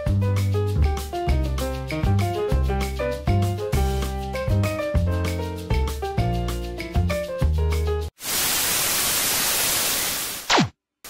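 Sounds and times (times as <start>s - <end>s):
music: 0.0s - 8.1s
television static hiss: 8.2s - 10.5s.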